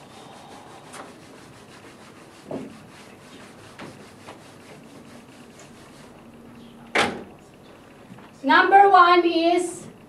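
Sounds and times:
eraser rubbing on whiteboard: 0:00.0 - 0:06.2.

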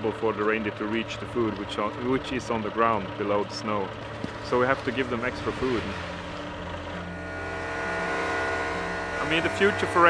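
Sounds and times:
pellets blown through a pipe: 0:06.8 - 0:10.0.

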